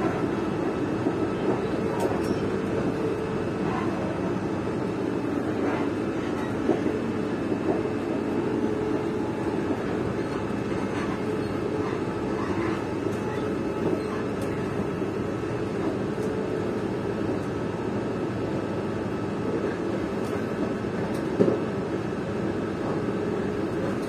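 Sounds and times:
train rumbling inside carriage: 0.0 - 24.0.

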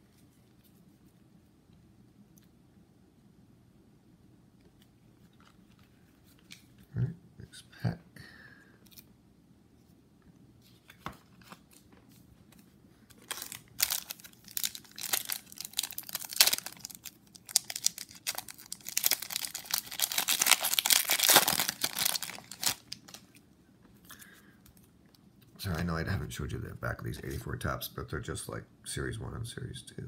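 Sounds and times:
foil wrapper tearing and crinkling: 13.1 - 23.3.

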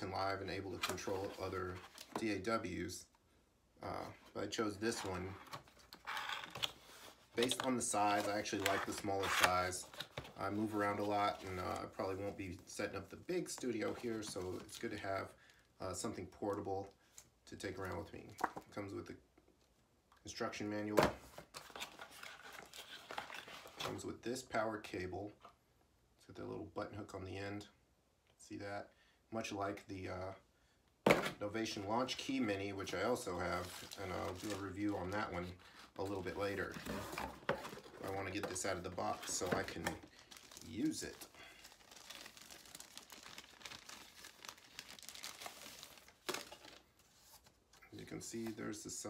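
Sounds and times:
cardboard packaging rustling: 4.6 - 12.9, 21.3 - 24.0, 32.2 - 47.8.

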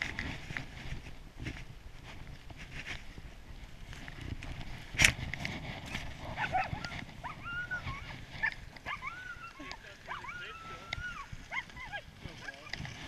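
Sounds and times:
dogs yipping: 6.3 - 12.8
dogs whining: 6.4 - 12.7.

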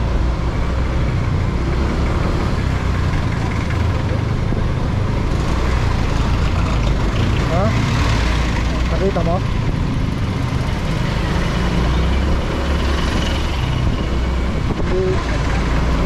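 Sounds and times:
road and traffic noise: 0.0 - 16.0
motorcycle engine running: 0.7 - 16.0.

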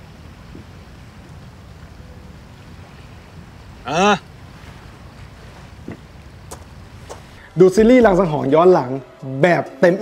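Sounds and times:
low rumble of wind and water: 0.0 - 8.4.

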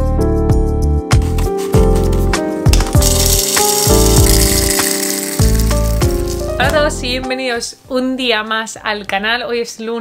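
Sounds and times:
coffee beans poured into hopper: 2.8 - 6.6.

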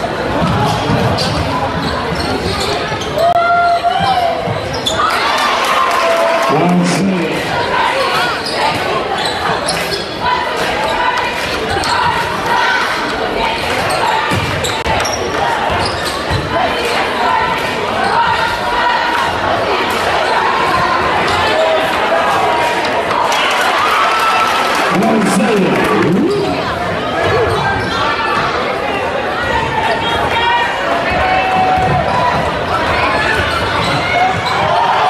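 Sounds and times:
voices of players and spectators: 0.0 - 35.0.

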